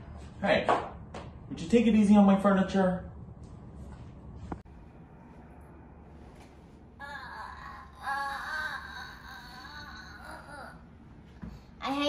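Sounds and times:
child wailing playfully: 7.0s - 10.8s.

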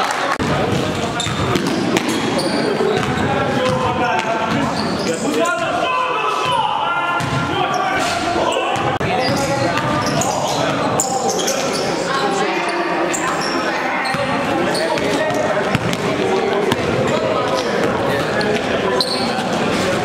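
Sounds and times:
players calling out: 0.3s - 20.0s.

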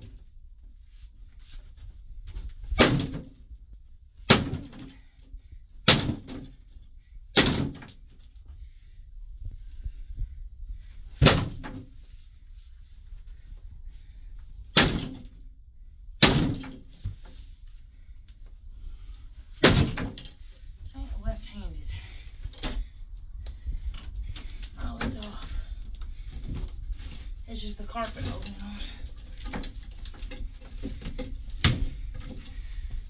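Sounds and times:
sledgehammer thuds on bed frame: 4.3s - 4.9s, 7.3s - 7.9s, 11.1s - 12.0s, 16.2s - 17.1s, 19.6s - 20.3s, 30.9s - 32.5s.

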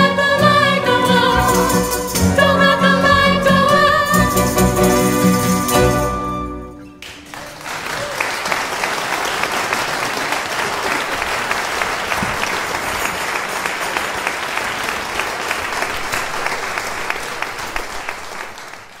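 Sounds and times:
audience applauding: 6.8s - 19.0s.

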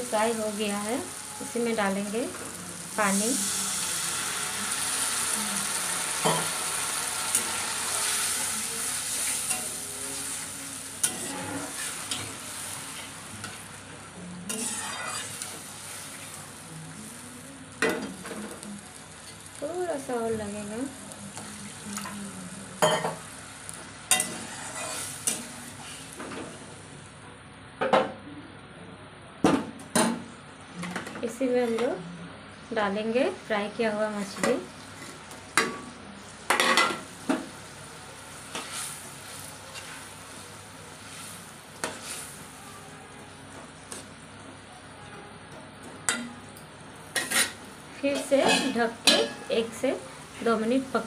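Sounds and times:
water sizzling in hot oil: 0.0s - 13.9s, 14.5s - 26.2s, 36.2s - 42.8s
metal spatula scraping a pan: 11.0s - 13.2s, 14.5s - 16.2s, 24.1s - 26.0s, 38.5s - 40.1s, 47.2s - 49.7s.

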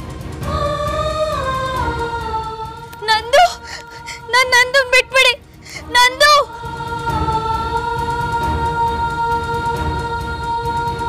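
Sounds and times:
high wordless vocal with vibrato: 0.4s - 11.0s.

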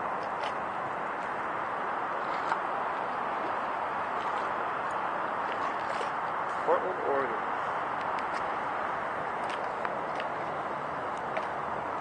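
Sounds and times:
rushing outdoor background noise: 0.0s - 12.0s.

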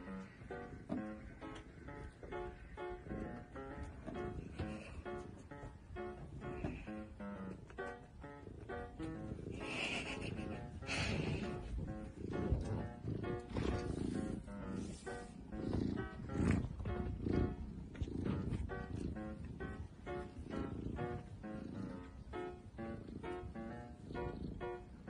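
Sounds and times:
cat purring: 0.0s - 25.0s.

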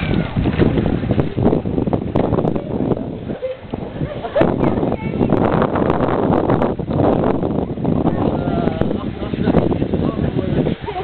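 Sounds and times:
pool water sloshing and splashing: 0.0s - 11.0s.

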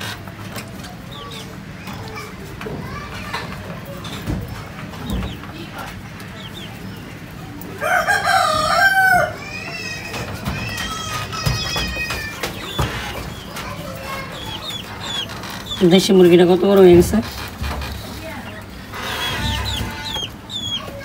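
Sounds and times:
chicken calls: 0.0s - 21.0s
rooster crowing: 7.8s - 9.4s.

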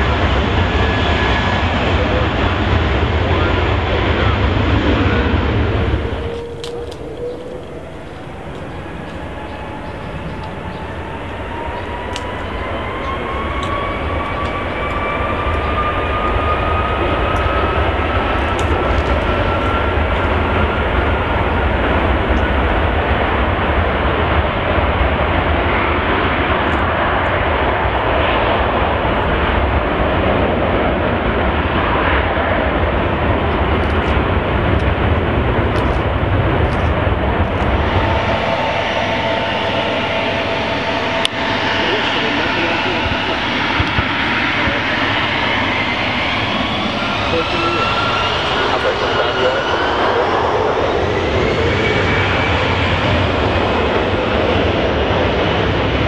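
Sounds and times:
deep jet rumble: 0.0s - 56.0s
jet engines spooling up: 0.0s - 56.0s
jet taxiing whine: 0.0s - 56.0s.

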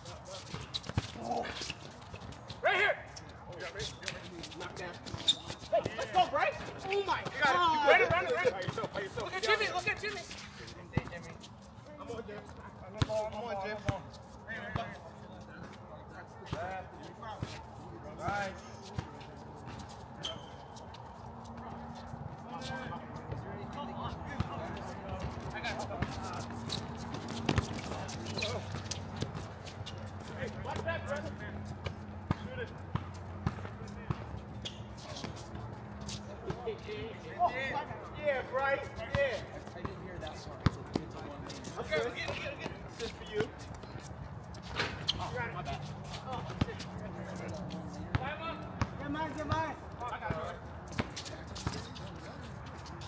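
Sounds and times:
players' voices and shouts: 2.5s - 11.4s, 36.3s - 43.6s
basketball bouncing on hard court: 31.9s - 34.3s.

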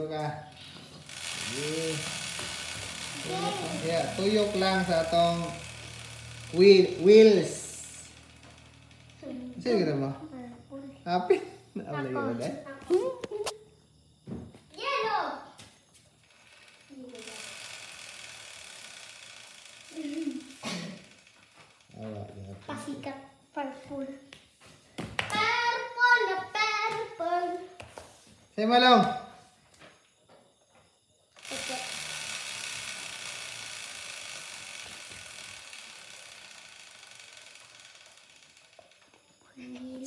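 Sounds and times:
motorcycle chain whirring: 0.0s - 12.4s, 16.2s - 23.5s, 31.3s - 40.0s.

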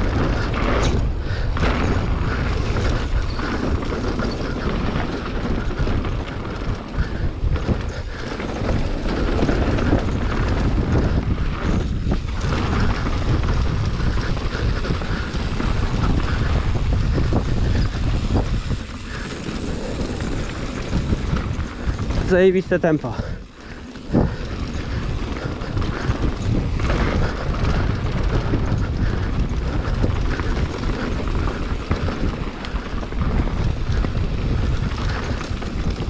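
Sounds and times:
bike knocking and rattling: 0.0s - 36.0s
tyres rolling over dirt and stones: 0.0s - 36.0s
wind rushing over microphone: 0.0s - 36.0s.

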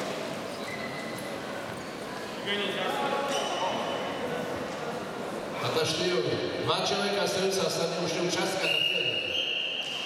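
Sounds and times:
echoing background chatter: 0.0s - 10.0s.

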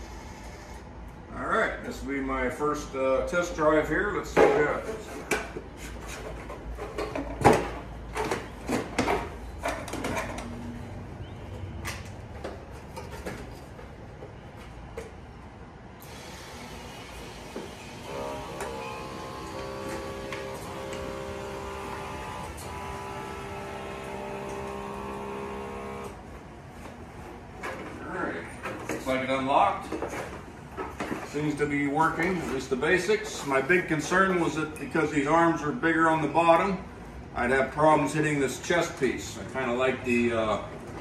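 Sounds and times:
steady electric hum: 15.4s - 41.0s.

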